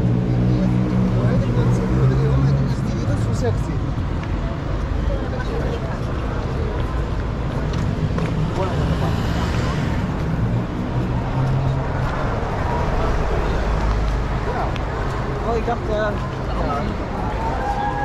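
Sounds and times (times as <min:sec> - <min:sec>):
passers-by talking: 0:00.0 - 0:18.0
road traffic rumble: 0:00.0 - 0:18.0
car passing by: 0:07.6 - 0:15.2.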